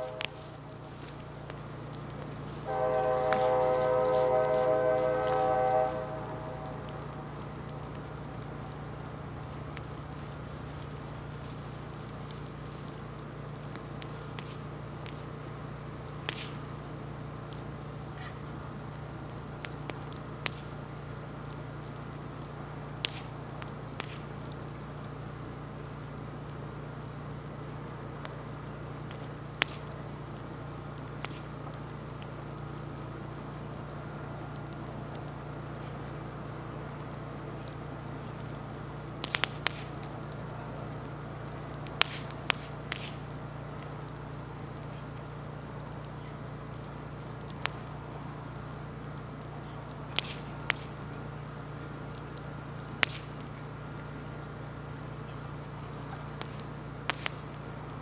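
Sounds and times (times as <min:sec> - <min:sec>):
bonfire low rumble: 0:00.0 - 0:58.0
fire crackling pops: 0:00.0 - 0:58.0.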